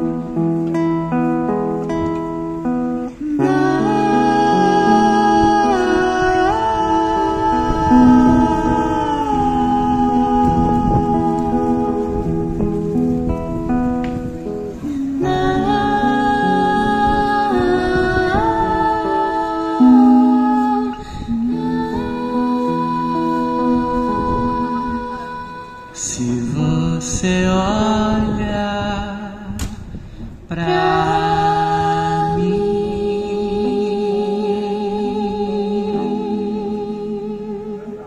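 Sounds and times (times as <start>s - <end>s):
acoustic guitar: 0.0s - 38.0s
man and girl humming: 3.0s - 13.6s, 14.6s - 28.3s
man and woman singing a long note: 3.0s - 29.6s, 30.5s - 38.0s.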